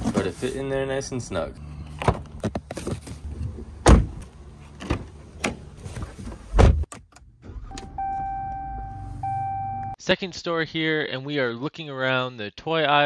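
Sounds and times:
car door shutting: 3.8s - 4.2s, 4.8s - 8.6s
car warning chime: 7.7s - 10.0s.

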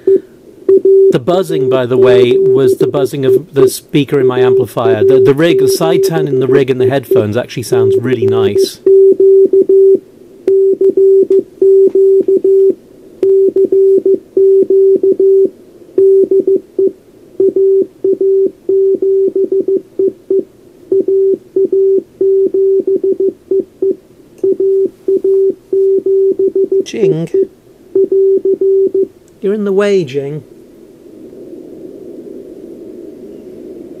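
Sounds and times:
morse code tone: 0.0s - 29.1s.

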